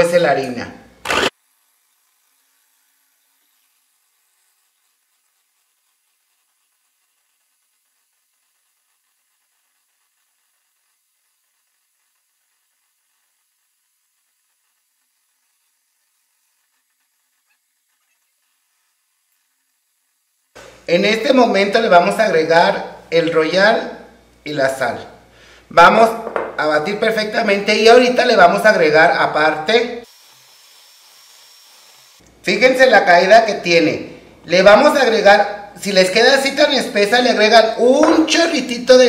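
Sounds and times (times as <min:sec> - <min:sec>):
very faint hiss: 0:00.1 - 0:28.7.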